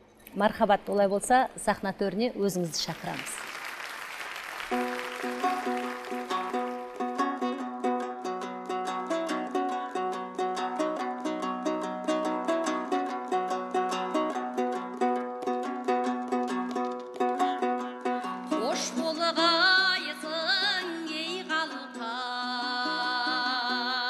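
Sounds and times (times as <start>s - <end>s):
strummed lute melody: 4.7s - 24.0s.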